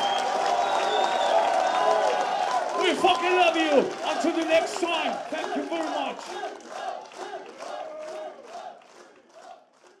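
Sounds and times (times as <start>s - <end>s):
crowd shouting in unison: 3.7s - 8.8s.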